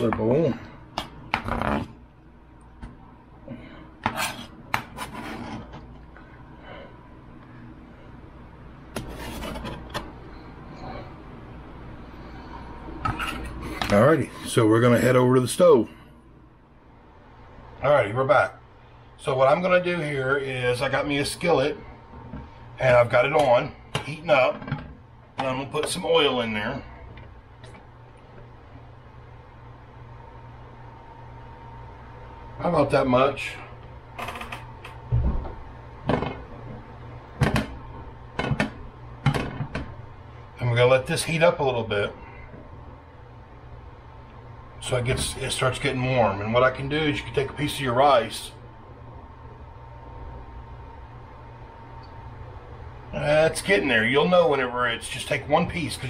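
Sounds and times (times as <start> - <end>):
low steady hum: 0.0 - 56.0
knife scraping cutting board: 4.0 - 5.8, 9.0 - 10.0.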